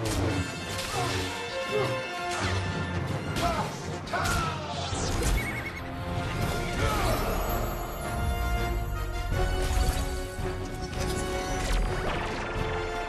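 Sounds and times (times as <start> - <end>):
film score music: 0.0 - 13.0.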